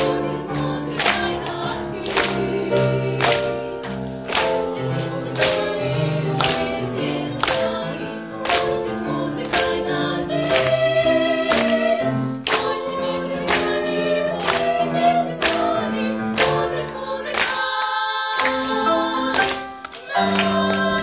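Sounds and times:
girls singing in harmony: 0:00.0 - 0:21.0
piano accompaniment: 0:00.0 - 0:21.0.

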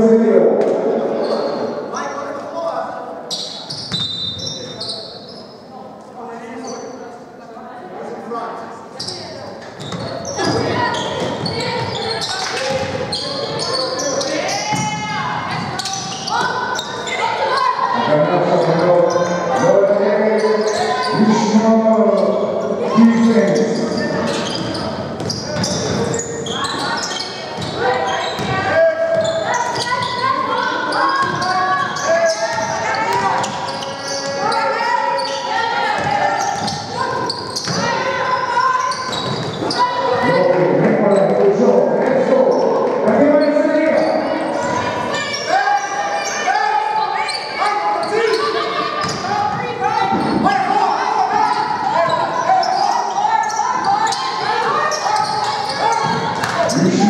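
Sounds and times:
voices calling out: 0:09.0 - 0:57.0.

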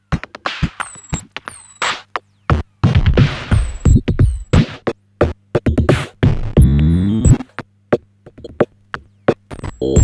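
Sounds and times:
steady low hum: 0:00.0 - 0:10.0
glitchy drum machine hits: 0:00.1 - 0:08.7, 0:09.3 - 0:10.0.

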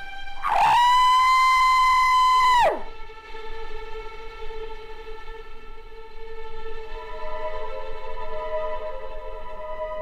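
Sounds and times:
faint music drone: 0:00.0 - 0:10.0
man screaming: 0:00.4 - 0:02.9.

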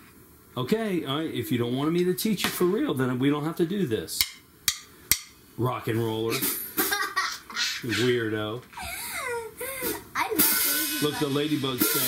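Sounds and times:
girl's wavering vocal sounds: 0:08.8 - 0:11.0
bright hiss-like noise burst: 0:09.6 - 0:12.0.

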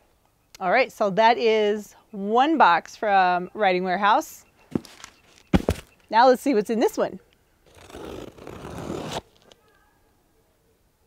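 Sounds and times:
scissors slitting packing tape: 0:07.7 - 0:09.6.

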